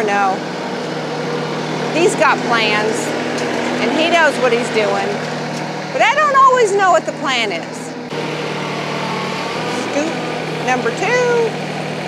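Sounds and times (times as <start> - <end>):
tractor engine running: 0.0 - 12.0.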